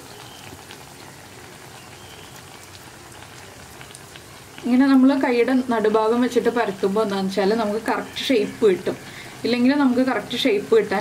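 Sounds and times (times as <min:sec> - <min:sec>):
fritters deep-frying in hot oil: 0:00.0 - 0:11.0.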